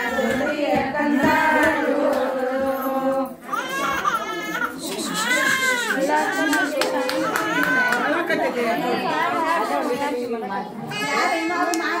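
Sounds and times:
women singing cradle song: 0.0s - 5.0s
women talking: 3.6s - 12.0s.

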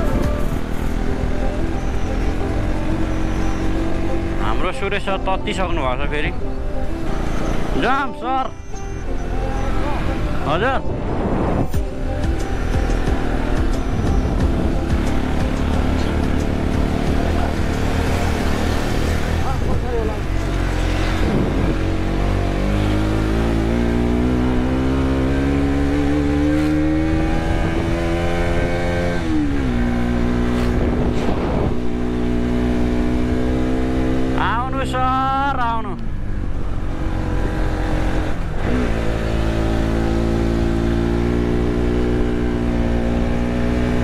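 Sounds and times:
motorcycle engine accelerating: 0.0s - 34.8s, 35.9s - 44.0s.

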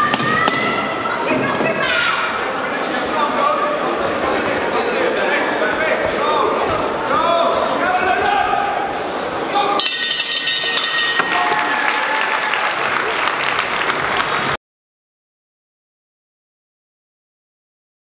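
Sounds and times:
boxing bell ringing: 9.8s - 11.4s.

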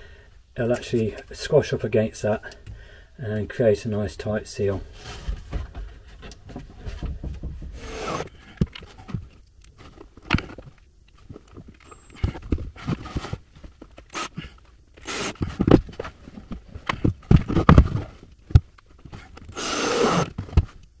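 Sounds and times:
knocks and clatter of handling: 4.8s - 14.1s, 15.4s - 19.5s.

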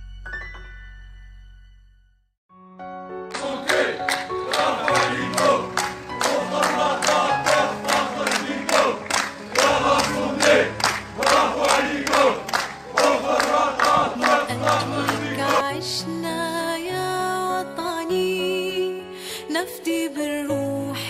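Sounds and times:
rhythmic clapping: 3.3s - 15.7s
men chanting: 3.4s - 15.7s.

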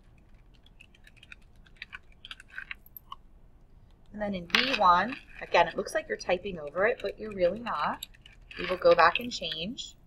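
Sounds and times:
typing on computer keyboard: 0.0s - 3.2s, 4.8s - 9.7s.

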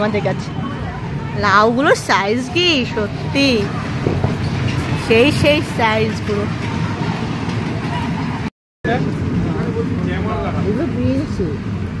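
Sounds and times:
distant people talking: 0.0s - 11.7s.

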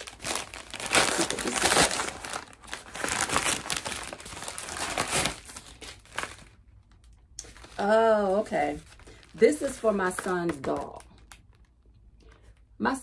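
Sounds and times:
paper tearing and crinkling: 0.0s - 6.5s.

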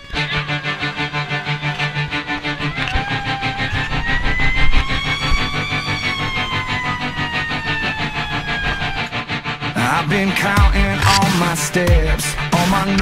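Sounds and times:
fire engine siren wailing: 0.0s - 10.2s
background music: 5.7s - 13.0s.

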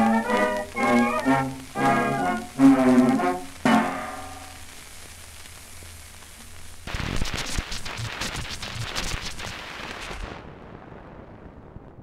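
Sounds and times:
stylus crackle and hiss on record: 0.0s - 12.0s.

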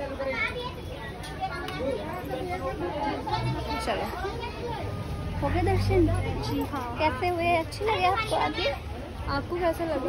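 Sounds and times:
indistinct voices of people and children: 0.0s - 10.0s.

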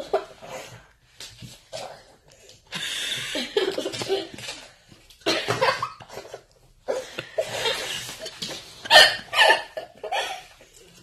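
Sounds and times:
boy coughing and laughing: 5.2s - 6.4s, 8.9s - 10.5s.

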